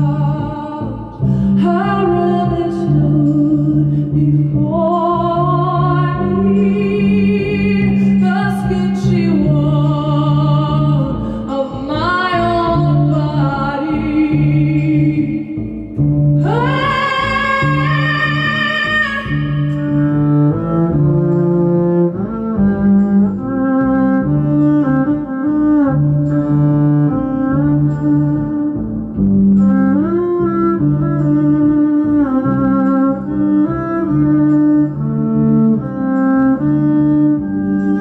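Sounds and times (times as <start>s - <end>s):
bowed electric upright bass melody: 0.0s - 38.0s.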